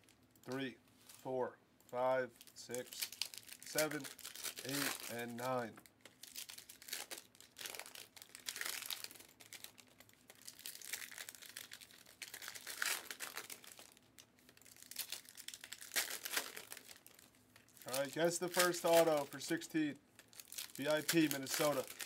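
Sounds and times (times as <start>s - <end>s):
wrapping crinkling: 0.0s - 22.0s.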